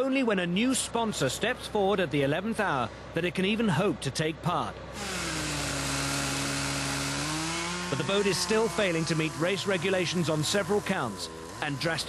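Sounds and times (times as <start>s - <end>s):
chainsaw cutting under load: 5.0s - 12.0s.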